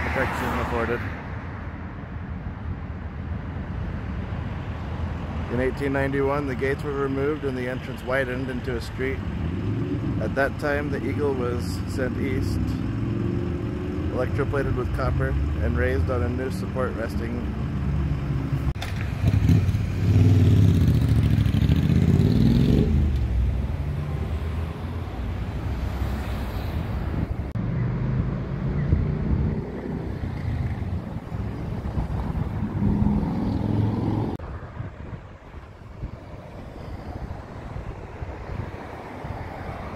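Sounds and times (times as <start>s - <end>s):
vehicles driving past: 0.0s - 39.9s
engine accelerating: 17.6s - 26.3s.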